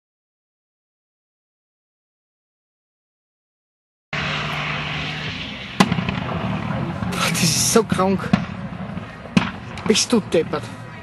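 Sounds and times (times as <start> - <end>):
exhaust backfire bang: 4.2 - 10.7.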